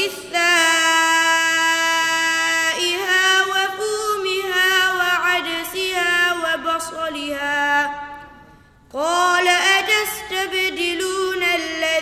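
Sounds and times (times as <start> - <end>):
boy reciting melodically: 0.0 - 12.0.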